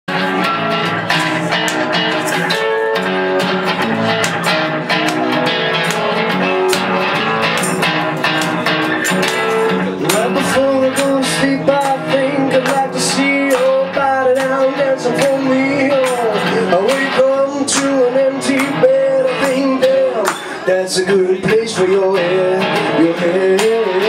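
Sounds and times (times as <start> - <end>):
guitar picking and strumming: 0.1 - 24.0.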